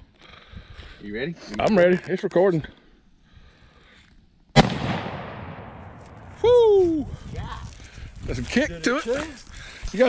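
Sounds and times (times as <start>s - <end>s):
pistol shot echoing: 4.6s - 6.2s.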